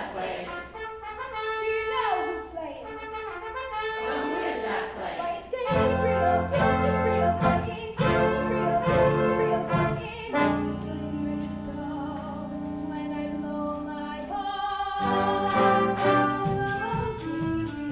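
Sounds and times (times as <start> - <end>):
trumpets and trombones sliding: 0.0 - 13.8, 15.0 - 17.9
brassy swing band playing: 0.1 - 13.9, 15.0 - 17.9.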